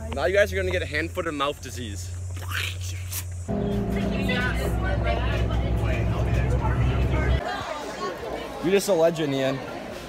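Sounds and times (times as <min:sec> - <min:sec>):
voices chattering: 0:00.0 - 0:10.0
bus engine drone: 0:03.5 - 0:07.4.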